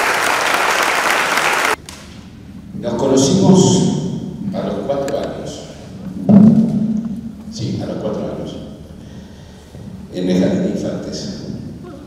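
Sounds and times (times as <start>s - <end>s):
man speaking into a microphone: 2.8s - 5.9s, 7.5s - 8.9s, 10.1s - 11.7s.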